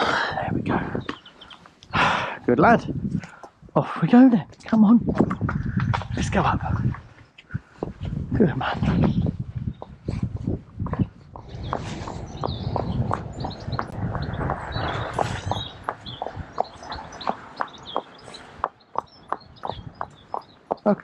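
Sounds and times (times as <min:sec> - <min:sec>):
birds chirping: 0:00.0 - 0:21.0
horse hooves on tarmac: 0:09.6 - 0:21.0
low rumble: 0:10.4 - 0:16.6.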